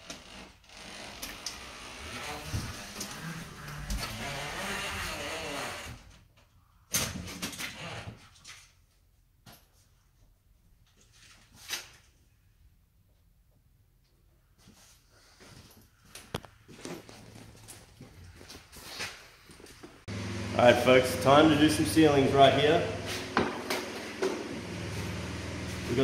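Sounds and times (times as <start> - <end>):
drywall taper scraping along wall: 1.2 - 6.0.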